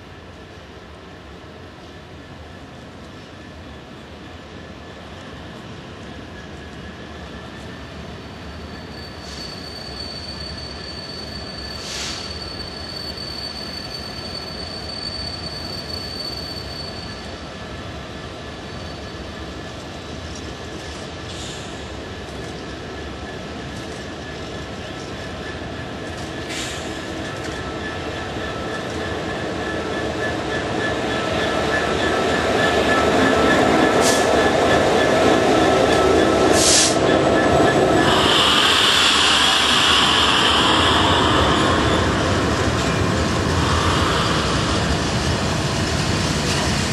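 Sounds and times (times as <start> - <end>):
diesel locomotive engine working: 0.0 - 46.9.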